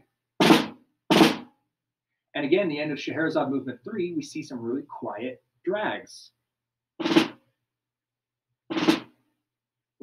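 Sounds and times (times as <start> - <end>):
snare drum drags: 7.0 - 7.4, 8.7 - 9.2.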